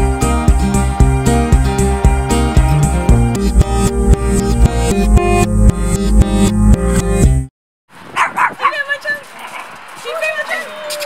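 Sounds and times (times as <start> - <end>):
dog yipping: 8.2 - 9.7.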